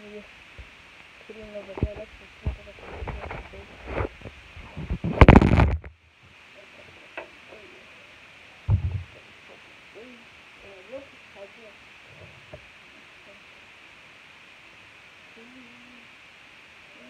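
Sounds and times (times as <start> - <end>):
faint voices: 0.0 - 5.7, 6.3 - 17.0
rubbing and scraping on microphone: 1.4 - 5.9, 8.7 - 9.2, 12.1 - 12.6
dull thump: 8.7 - 9.1
phone handling knocks: 8.7 - 9.1.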